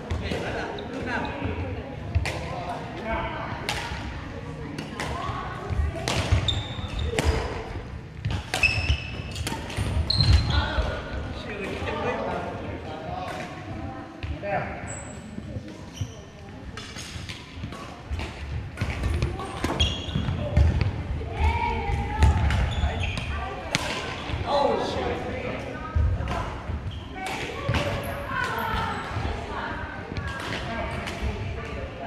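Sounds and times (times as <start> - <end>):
voices in echoing hall: 0.0 - 32.0
sneaker squeaks: 6.1 - 7.7, 8.3 - 10.8, 14.8 - 17.4, 18.8 - 20.8, 22.2 - 24.4, 26.8 - 29.2.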